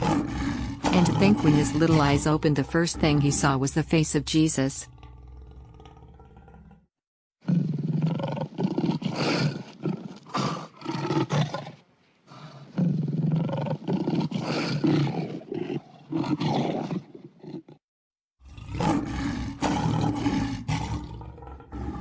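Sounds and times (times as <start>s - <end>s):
lion roaring and grunting: 0.0s - 3.6s, 4.9s - 17.8s, 18.4s - 22.0s.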